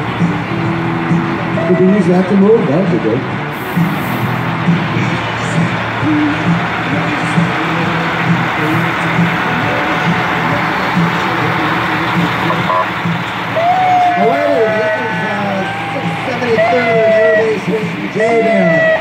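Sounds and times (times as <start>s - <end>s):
fire truck diesel engine rumble: 0.0s - 19.0s
street noise: 0.0s - 19.0s
voices with wavering pitch: 6.0s - 13.0s, 13.6s - 19.0s.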